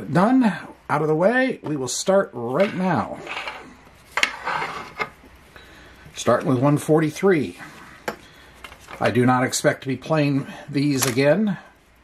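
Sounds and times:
paper tickets sliding on wood: 3.2s - 5.1s.

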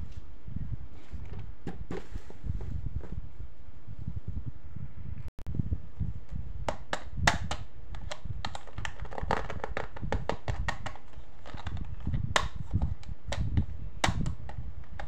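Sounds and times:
clicks and taps on plastic toy: 6.7s - 15.0s.

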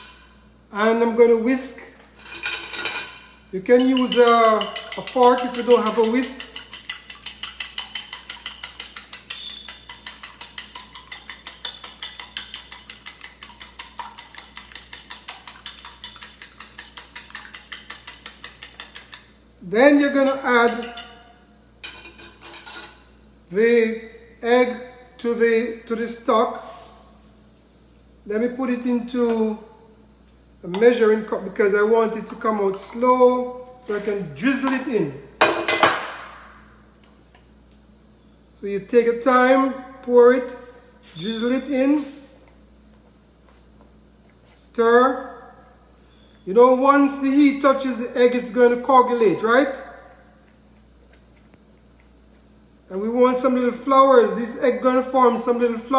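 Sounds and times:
low steady background hum: 0.0s - 55.9s
whisk clicking against glass bowl: 3.8s - 19.3s, 20.2s - 21.2s.

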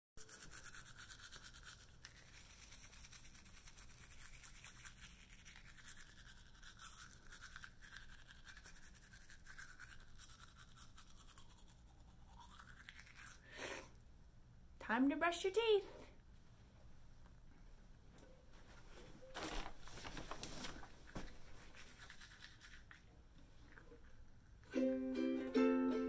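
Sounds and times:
toothbrush brushing teeth: 0.2s - 13.9s, 21.2s - 24.3s.

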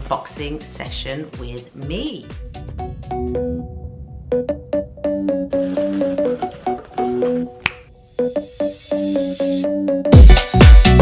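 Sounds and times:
keyboard-like notes music: 2.2s - 11.0s
sharp snap: 7.6s - 7.9s.

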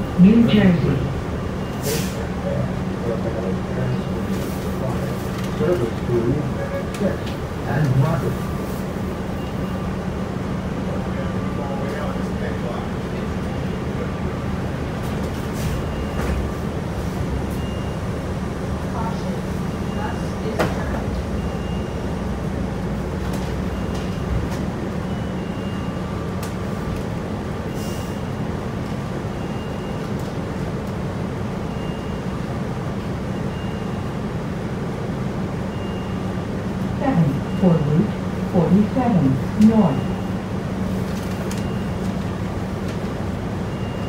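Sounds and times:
bus drivetrain hum and whine: 0.0s - 44.0s.

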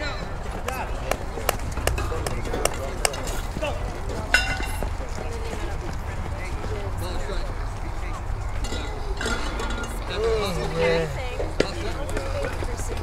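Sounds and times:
background chatter of voices: 0.0s - 13.0s.

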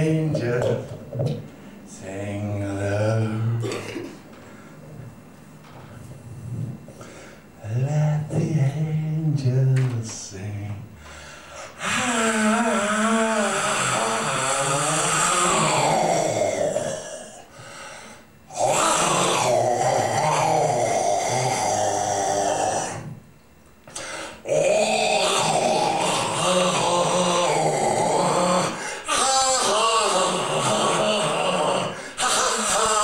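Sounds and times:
man making wordless vocal sounds: 0.0s - 4.2s, 7.6s - 11.0s, 11.8s - 17.5s, 18.5s - 23.2s, 24.4s - 33.0s.

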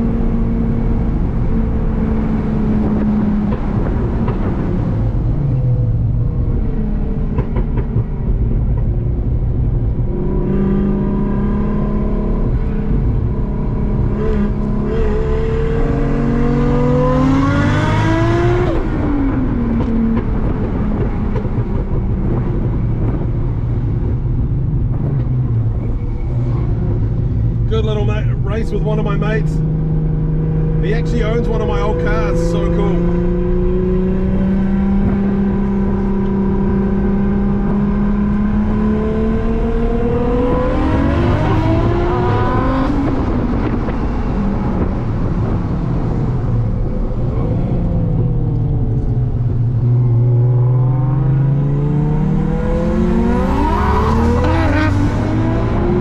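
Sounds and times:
car engine revving from inside: 29.6s - 56.0s.

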